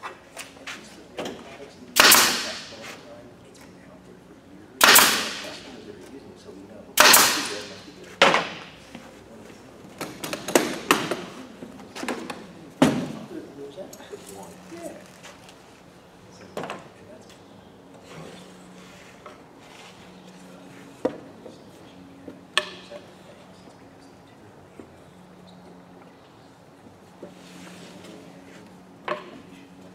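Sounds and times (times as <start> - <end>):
pin nailer firing: 2.0 - 2.9, 4.8 - 5.8, 7.0 - 8.8
hiss after nailer shot: 2.0 - 3.0, 4.8 - 5.7, 7.0 - 7.9.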